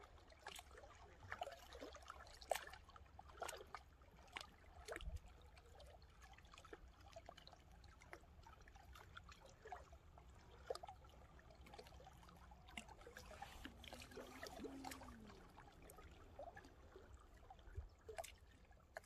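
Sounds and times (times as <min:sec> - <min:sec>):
little water splashes: 0:00.0 - 0:19.0
small waves lapping on rocks: 0:00.0 - 0:19.0
low steady rumble: 0:08.2 - 0:18.8.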